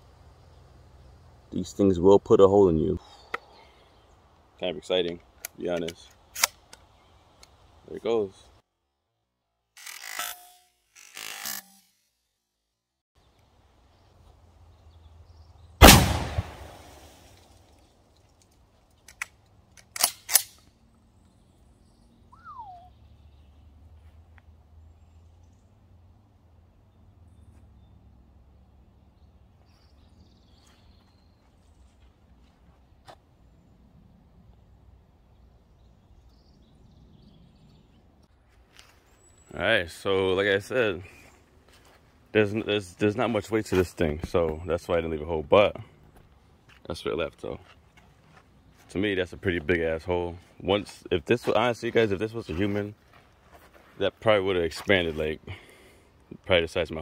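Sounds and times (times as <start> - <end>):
gun handling noises: 5.0 - 7.6, 15.8 - 20.8
shotgun blast: 15.8 - 17.2.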